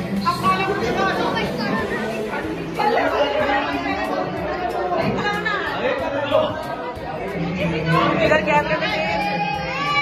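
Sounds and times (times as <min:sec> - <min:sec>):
crowd chatter in a hall: 0:00.0 - 0:10.0.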